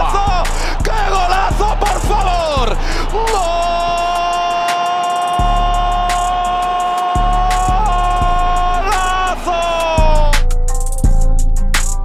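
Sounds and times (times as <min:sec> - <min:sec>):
beat music with bass drum: 0:00.0 - 0:12.0.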